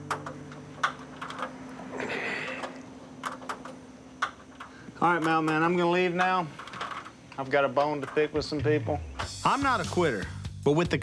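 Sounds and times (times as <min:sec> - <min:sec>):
hand tools clicking and tapping: 0:00.0 - 0:09.4
faint steady hum: 0:00.0 - 0:10.2.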